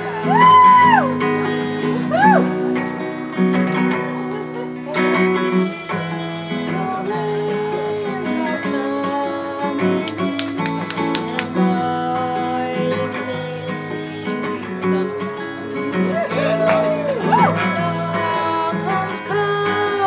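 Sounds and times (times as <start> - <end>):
acoustic guitar playing: 0.0 - 20.0
woman singing: 0.0 - 20.0.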